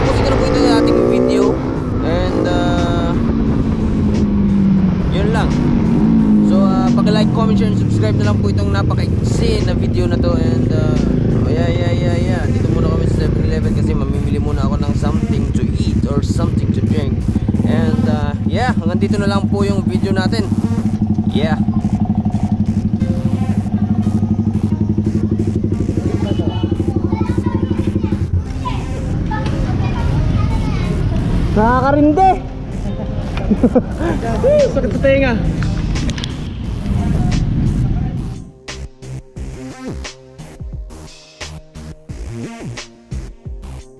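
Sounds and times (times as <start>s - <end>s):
voices: 0.0s - 38.6s
motorcycle engine running: 0.0s - 41.0s
music: 0.0s - 43.9s.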